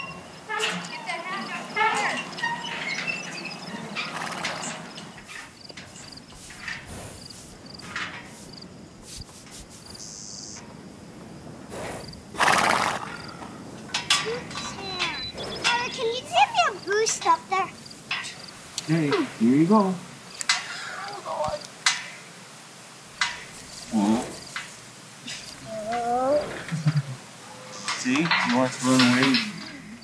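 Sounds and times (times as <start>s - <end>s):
faint outdoor voices: 0.0s - 30.0s
insect chirring: 0.0s - 30.0s
horse snorting: 3.9s - 8.6s, 11.6s - 13.8s, 14.4s - 16.3s, 23.8s - 28.0s.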